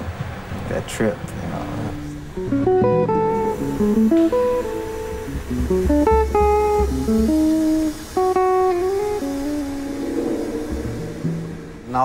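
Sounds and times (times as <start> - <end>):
guitar playing: 1.9 - 12.0.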